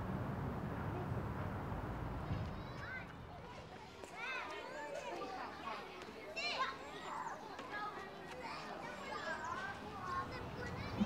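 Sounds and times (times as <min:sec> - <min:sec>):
children calling and shouting: 0:02.3 - 0:11.0.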